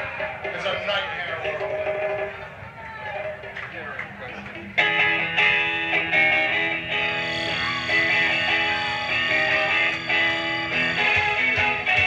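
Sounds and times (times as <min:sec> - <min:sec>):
electric guitar chords: 0:04.1 - 0:12.0
live rock band: 0:04.5 - 0:12.0.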